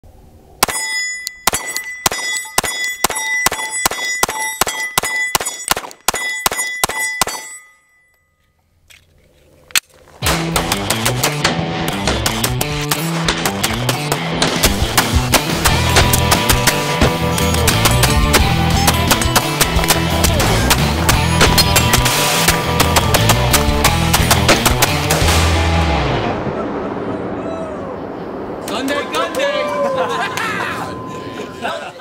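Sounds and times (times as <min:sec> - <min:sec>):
pistol shots: 0:01.5 - 0:07.5, 0:10.2 - 0:25.5
heavy rock music: 0:10.2 - 0:26.4.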